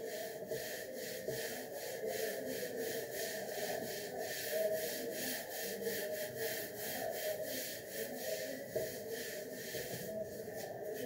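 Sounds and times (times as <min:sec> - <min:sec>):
cloth rubbing a chalkboard: 0:00.0 - 0:11.0.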